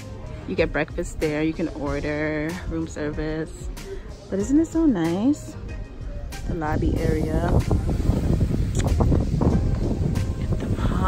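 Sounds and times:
wind buffeting microphone: 0:06.4 - 0:11.0.

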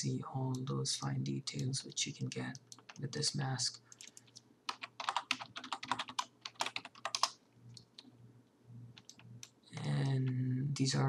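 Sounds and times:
faint low hum: 0:00.0 - 0:11.0
computer keyboard keys clattering: 0:03.9 - 0:08.0, 0:09.0 - 0:09.2.

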